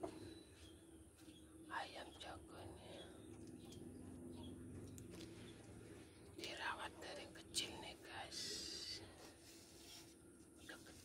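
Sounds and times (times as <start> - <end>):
person whispering: 6.4 - 9.3, 10.6 - 11.0.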